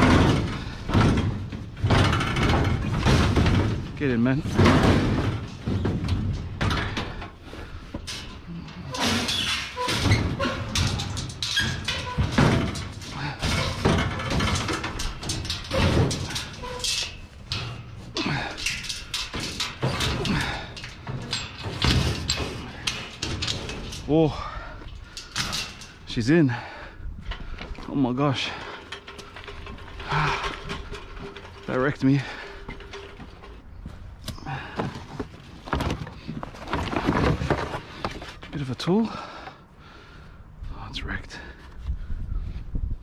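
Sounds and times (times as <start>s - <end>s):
heavy object knocking and scraping: 0.0s - 7.3s.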